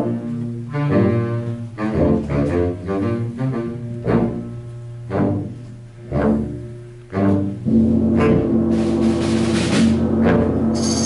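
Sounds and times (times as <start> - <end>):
accented band chords: 0.0 - 11.0
concert wind band playing: 0.0 - 11.0
held low bass note: 0.0 - 11.0.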